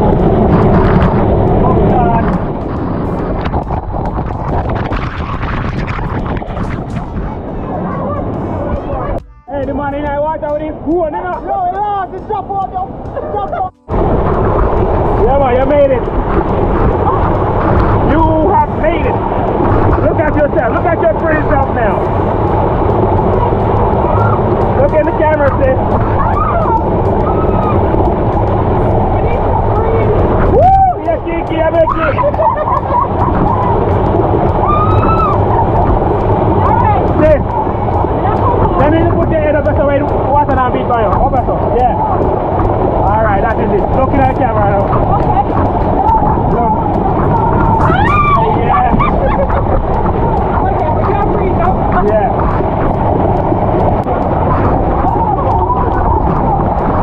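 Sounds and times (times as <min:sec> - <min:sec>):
people calling and shouting: 0:00.0 - 0:57.0.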